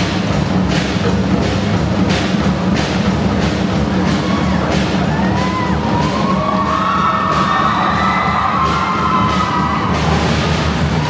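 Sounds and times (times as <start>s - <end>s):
drum and cymbal solo: 0.0s - 11.0s
crowd cheering and whooping: 4.0s - 11.0s.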